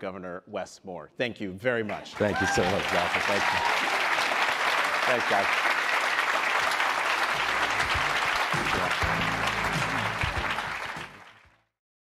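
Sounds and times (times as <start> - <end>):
audience applauding: 2.1 - 11.7
music: 7.4 - 11.7.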